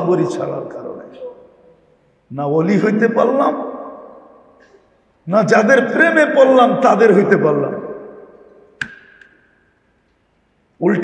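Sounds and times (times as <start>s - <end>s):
echoing man's voice: 0.0s - 1.5s, 2.3s - 4.6s, 5.2s - 8.7s, 10.8s - 11.0s
sharp click: 8.8s - 9.4s.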